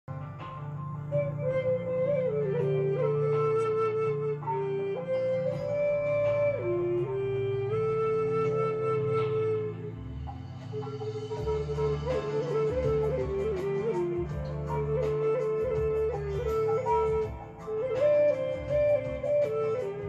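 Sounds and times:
flute playing slow melody: 0.1 - 20.0.

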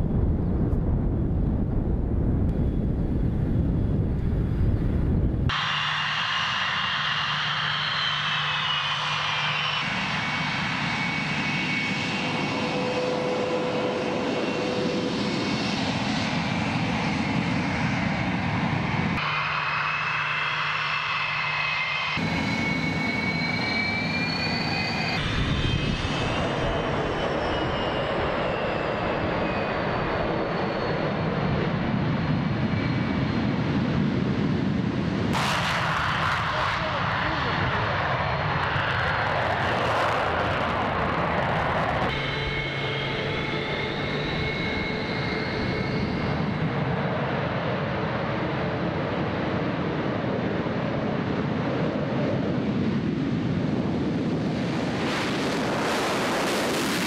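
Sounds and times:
jet engines turbine whine: 0.0 - 57.0.

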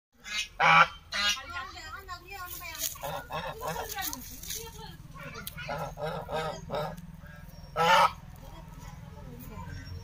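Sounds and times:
goose honking: 0.2 - 1.5, 3.0 - 4.1, 5.6 - 7.0, 7.8 - 8.3.

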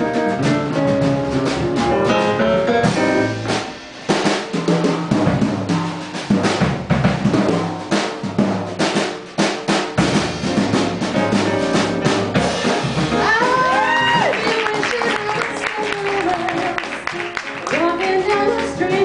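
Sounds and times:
jazz drum solo: 0.0 - 19.0.

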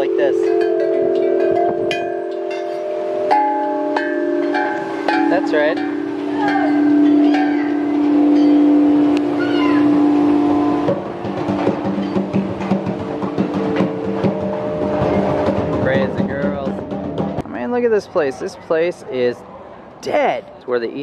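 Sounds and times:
metal chime tubes ringing: 0.0 - 11.2
small child's voice: 9.4 - 9.9.

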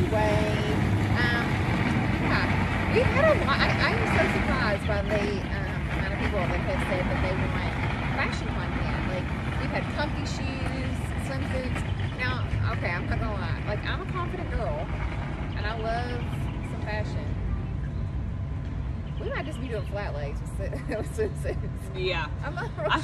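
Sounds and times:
women talking: 0.0 - 14.9, 15.6 - 17.4, 19.2 - 23.0
steady low rumble: 0.0 - 23.0.

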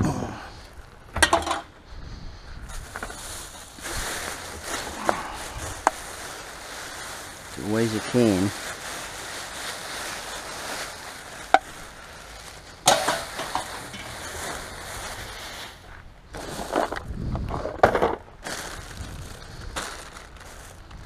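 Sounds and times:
plastic bags rustling in a bin: 2.6 - 17.3, 18.2 - 21.0.

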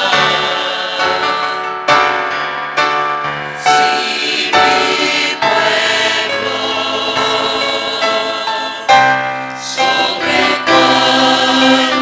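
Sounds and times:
choir singing a hymn: 0.0 - 2.1, 3.5 - 12.0.

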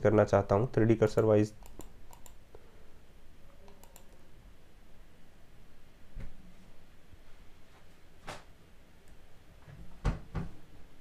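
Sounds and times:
low room hiss: 0.0 - 11.0
computer mouse and keyboard clicks: 1.2 - 2.4, 3.6 - 4.2.

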